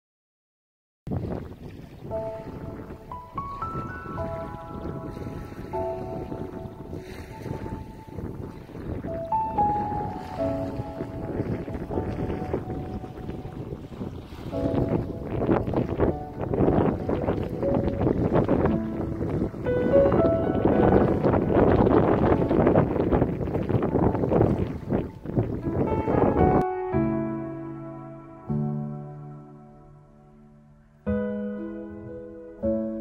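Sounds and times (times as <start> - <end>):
wind buffeting microphone: 1.1 - 27.2
sustained keyboard music: 2.0 - 33.0.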